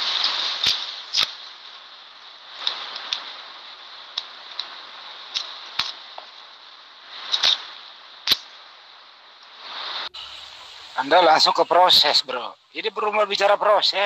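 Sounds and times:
recording hiss: 0.0 - 14.0.

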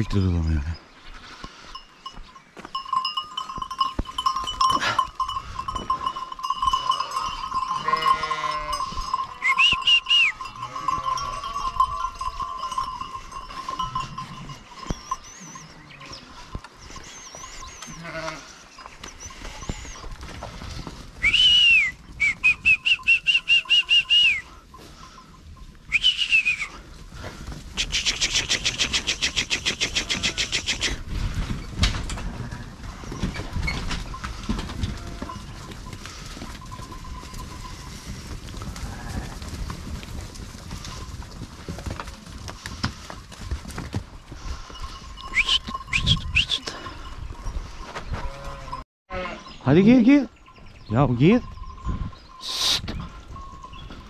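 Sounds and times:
sheep bleating: 6.7 - 9.6, 10.4 - 12.1, 17.8 - 18.6, 29.8 - 30.7, 48.2 - 49.5
short high-pitched whistling: 9.4 - 10.4, 21.2 - 24.5, 25.9 - 26.8, 45.3 - 46.7.

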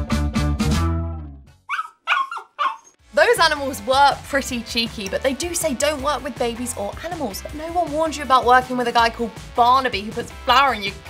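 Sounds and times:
background music: 0.0 - 1.6, 2.9 - 11.0
dog whining: 1.7 - 2.9.

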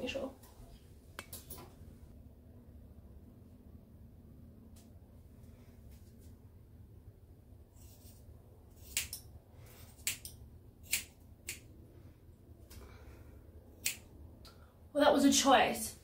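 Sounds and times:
scissors snipping hair: 8.8 - 9.3, 9.9 - 11.7, 13.8 - 14.1.

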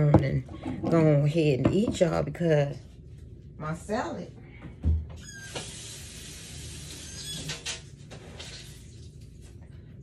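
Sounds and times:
tap water running: 4.8 - 9.8.

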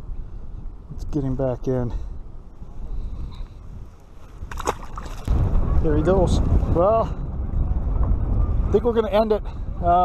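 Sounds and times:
wind buffeting microphone: 0.0 - 10.0
fish splashing into water: 4.5 - 5.3.

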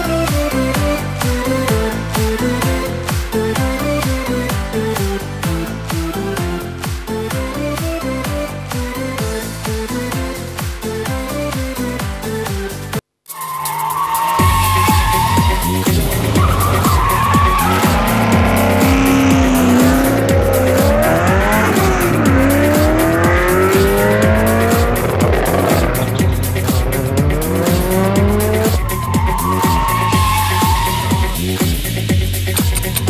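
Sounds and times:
music with steady beat: 0.0 - 33.0
tyres squealing: 13.3 - 33.0
race car engine revving: 14.4 - 32.1
jingle music: 15.5 - 29.1.

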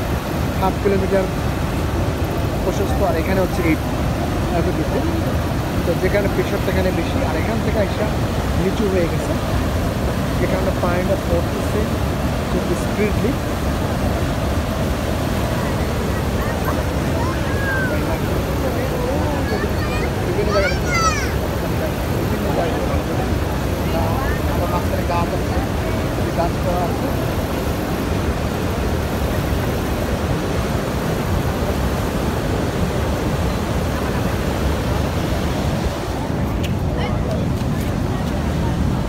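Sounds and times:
river rapids roaring: 0.0 - 39.0
faint voices: 2.2 - 39.0.

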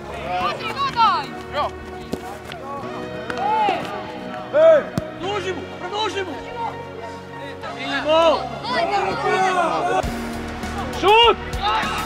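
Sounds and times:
people shouting: 2.6 - 4.9, 7.7 - 12.0.

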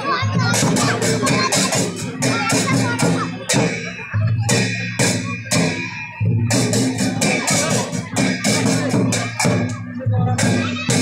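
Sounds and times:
double-headed drum beats: 0.0 - 11.0.

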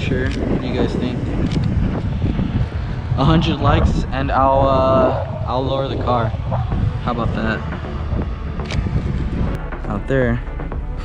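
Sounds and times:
wind buffeting microphone: 0.0 - 9.7.

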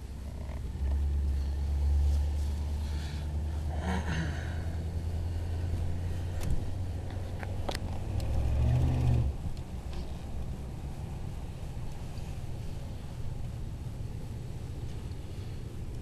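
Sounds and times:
car engine and tyres rumbling: 0.0 - 16.0.

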